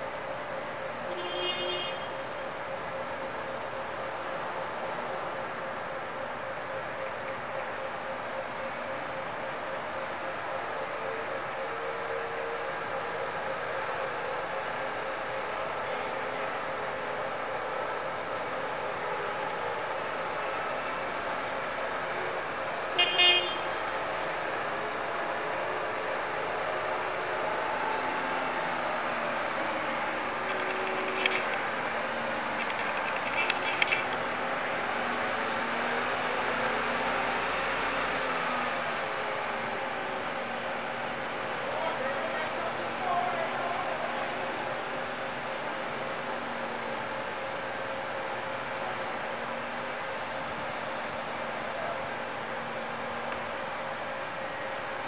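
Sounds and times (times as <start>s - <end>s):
forklift horn honk: 23.0s - 23.7s.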